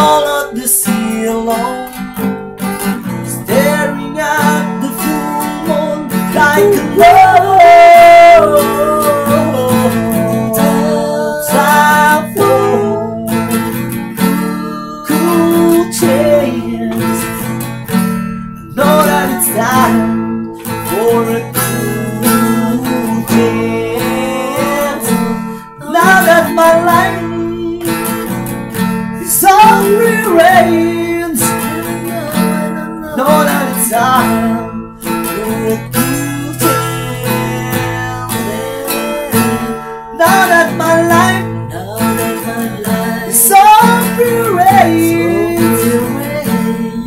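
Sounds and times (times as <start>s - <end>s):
men singing: 0.0s - 2.0s, 3.2s - 17.6s, 18.6s - 28.4s, 29.2s - 47.0s
acoustic guitar strumming: 0.0s - 47.0s.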